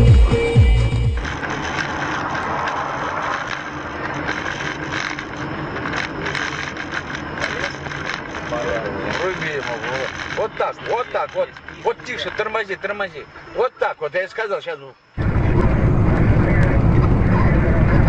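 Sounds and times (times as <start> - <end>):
music with heavy beat: 0.0 - 1.3
car road and engine noise: 0.0 - 18.0
man talking: 8.5 - 18.0.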